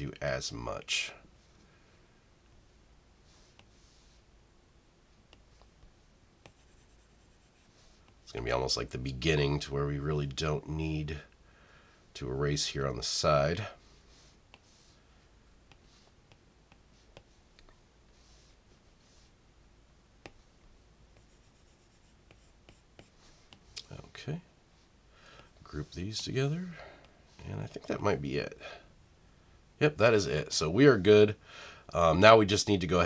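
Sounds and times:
stylus scratching on glass screen: 6.4s - 8.0s, 21.2s - 23.5s.

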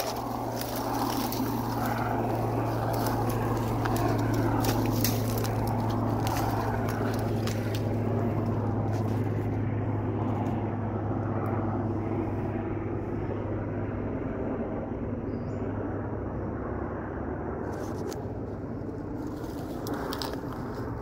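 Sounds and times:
footsteps through dry brush: 0.0s - 9.6s, 17.7s - 21.0s
steady low drone: 0.0s - 21.0s.

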